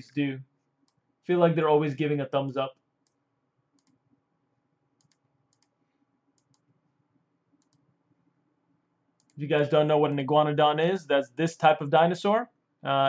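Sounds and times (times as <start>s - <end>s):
mouse and keyboard clicks: 3.8s - 4.0s, 5.0s - 5.7s.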